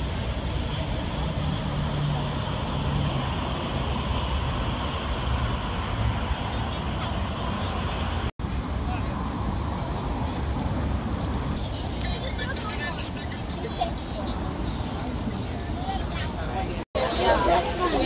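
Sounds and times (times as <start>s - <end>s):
road traffic rumble: 0.0s - 18.0s.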